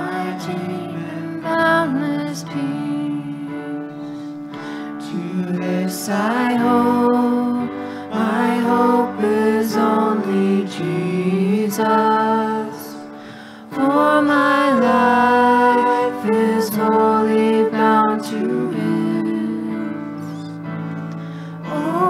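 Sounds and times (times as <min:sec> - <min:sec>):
group singing worship song: 0:00.0 - 0:20.6, 0:21.5 - 0:22.0
instrumental accompaniment: 0:00.0 - 0:22.0.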